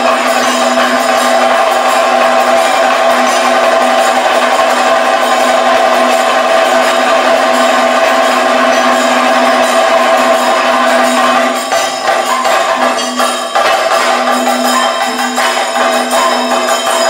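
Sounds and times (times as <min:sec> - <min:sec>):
drums played loudly: 0:00.0 - 0:17.0
ringing metal cymbals: 0:00.0 - 0:17.0.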